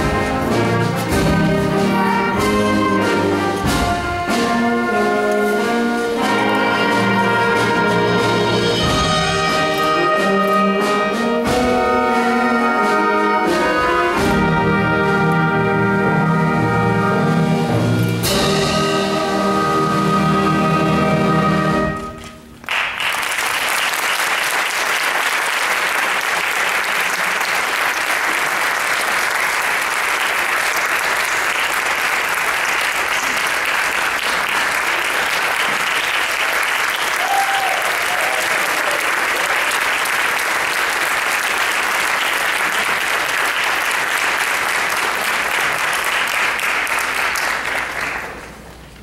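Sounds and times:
audience applauding: 22.2s - 49.0s.

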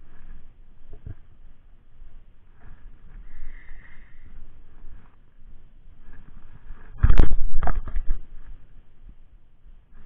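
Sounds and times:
faint low background noise: 0.0s - 10.0s.

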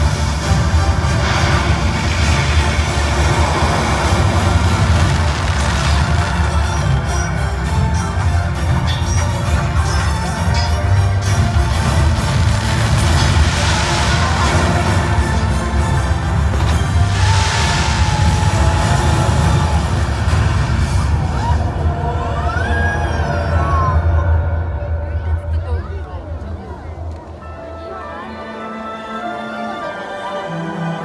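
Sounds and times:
fireworks hissing: 0.0s - 21.9s
soundtrack music over loudspeakers: 0.0s - 31.0s.

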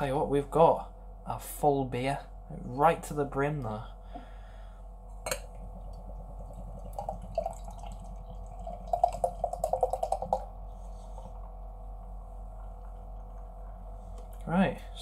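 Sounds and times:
beer glugging into a glass: 5.2s - 10.5s.

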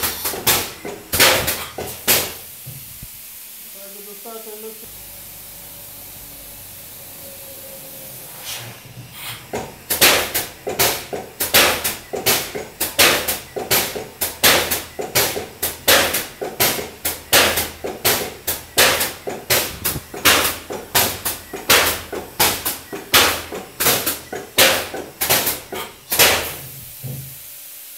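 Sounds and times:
pump hissing pulses: 0.0s - 27.9s
spray machine humming: 0.0s - 27.9s.

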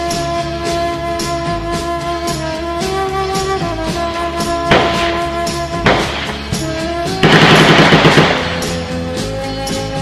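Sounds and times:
music with held melodic notes: 0.0s - 10.0s
rapid automatic gunfire: 7.2s - 8.8s.

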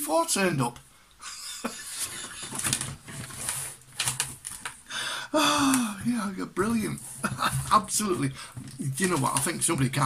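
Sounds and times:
cardboard tray rustling: 2.0s - 4.8s, 5.6s - 10.0s.

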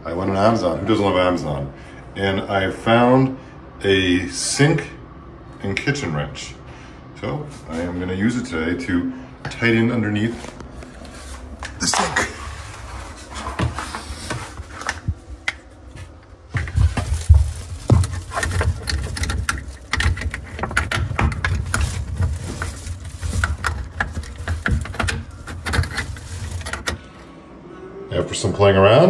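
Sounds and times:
bumps and rubbing near microphone: 10.3s - 27.0s.

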